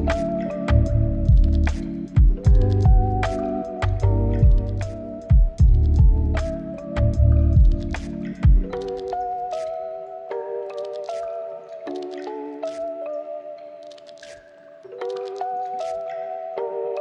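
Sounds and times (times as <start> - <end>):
lo-fi hip hop instrumental: 0.0 - 17.0.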